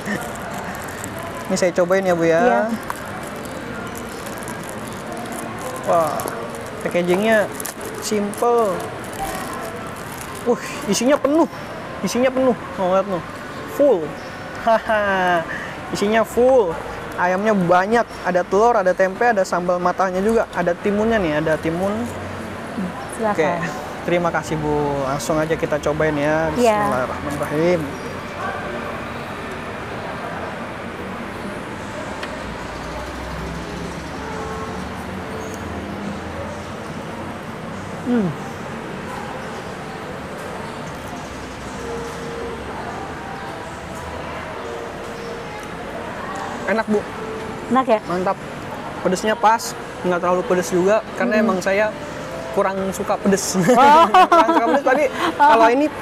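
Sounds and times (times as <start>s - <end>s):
background noise: 0.0s - 56.0s
faint voices talking: 0.0s - 56.0s
traffic noise: 0.0s - 56.0s.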